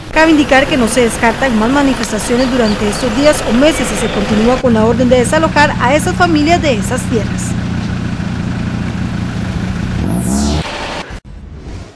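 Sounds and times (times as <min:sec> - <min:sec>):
vehicle engines in slow traffic: 0:00.0 - 0:11.8
engine revving: 0:00.5 - 0:11.9.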